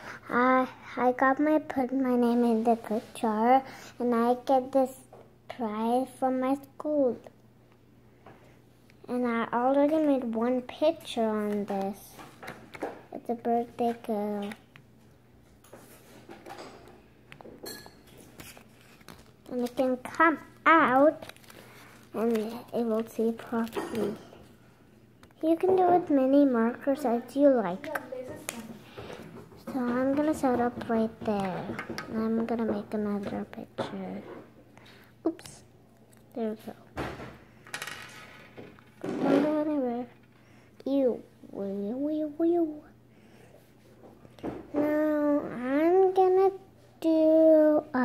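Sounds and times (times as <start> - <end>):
notepad pages turning: 18.1 - 20.2, 20.8 - 24.0.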